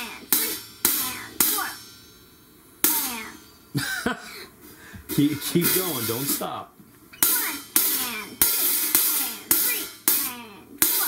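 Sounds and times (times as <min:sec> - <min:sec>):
hi-hat struck with drumstick: 0:00.0 - 0:03.8, 0:05.0 - 0:06.6, 0:07.2 - 0:11.0
man counting: 0:05.0 - 0:06.8.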